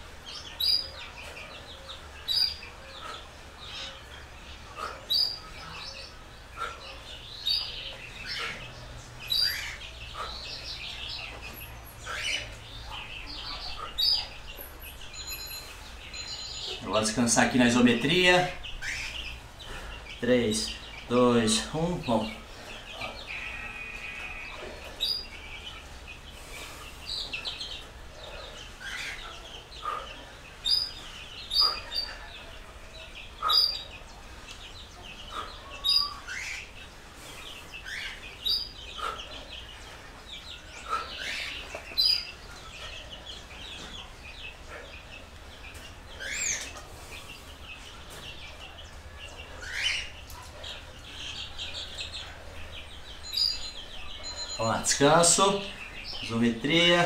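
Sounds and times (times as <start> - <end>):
birds chirping: 0.0 - 57.0.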